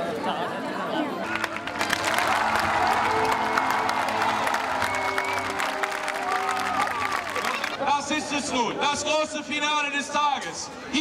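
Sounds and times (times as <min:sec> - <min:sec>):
crowd applauding: 0:01.2 - 0:08.3
music with long held notes: 0:01.3 - 0:07.7.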